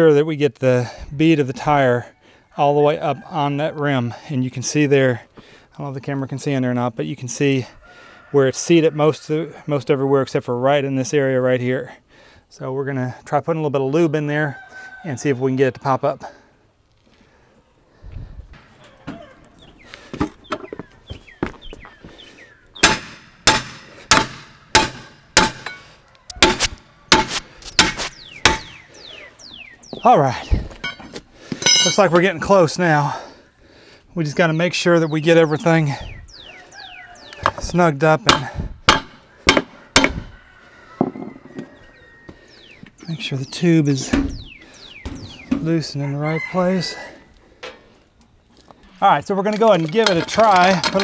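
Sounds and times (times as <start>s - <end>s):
pry bar clanking on steel: 22.8s - 28.8s, 30.8s - 32.1s, 49.5s - 51.0s
hammer striking steel ring: 31.6s - 32.0s
quiet knocks and scraping: 40.9s - 42.9s.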